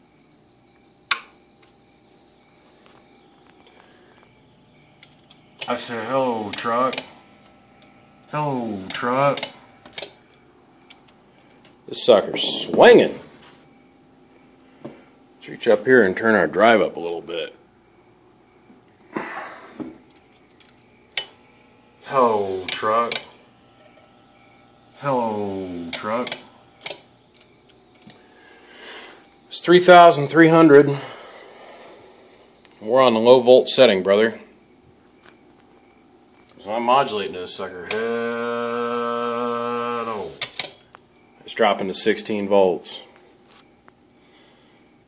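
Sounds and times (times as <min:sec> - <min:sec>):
sharp click: 0:01.1 - 0:01.4, 0:08.9 - 0:10.2, 0:22.6 - 0:23.3.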